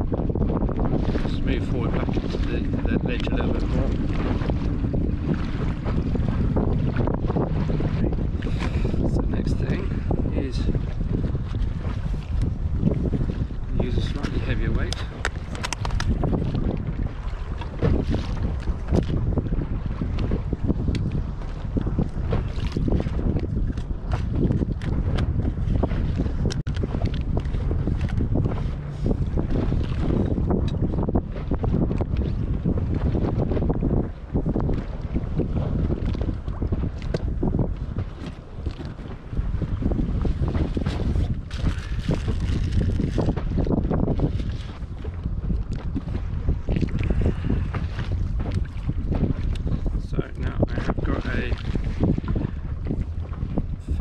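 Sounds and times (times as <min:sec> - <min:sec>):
choppy sea water: 0:00.0 - 0:54.0
wind buffeting microphone: 0:00.0 - 0:54.0.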